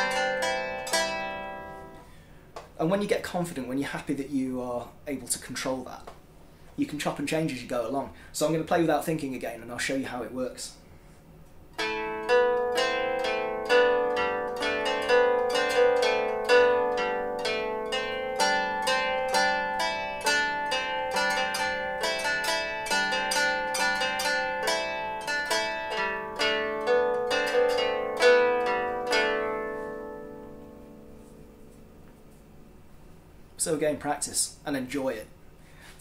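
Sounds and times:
lyre plucked with a plectrum: 0.0 - 2.8, 11.7 - 32.6.

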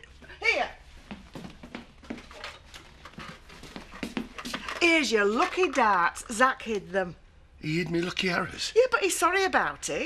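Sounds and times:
woman speaking: 0.2 - 0.8, 4.6 - 7.2, 8.7 - 10.0.

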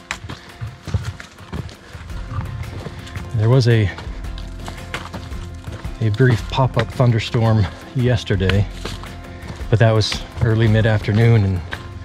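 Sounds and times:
background music with held tones: 0.0 - 12.0
footsteps on dirt and rock trail: 0.0 - 12.0.

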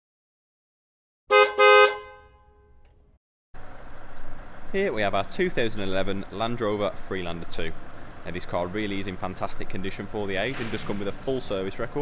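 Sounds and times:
vehicle horn honking: 1.3 - 2.8.

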